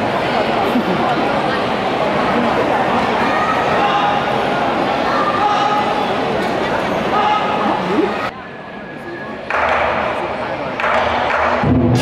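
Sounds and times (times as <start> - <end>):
voices calling and shouting: 0.0 - 10.9
steady din: 9.5 - 12.0.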